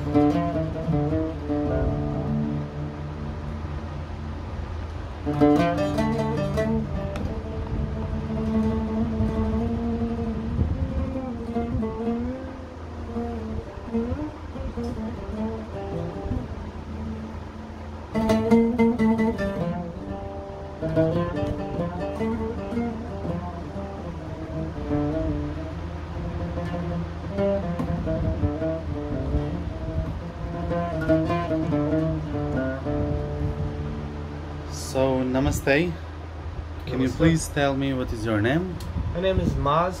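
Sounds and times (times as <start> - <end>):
oud notes plucked with a pick: 0.0 - 36.8.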